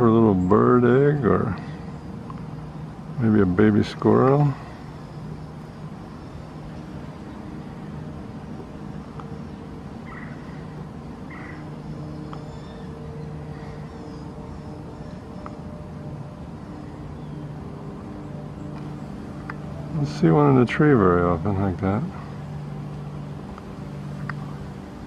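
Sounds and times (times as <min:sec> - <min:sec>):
low machine hum: 0:00.0 - 0:25.0.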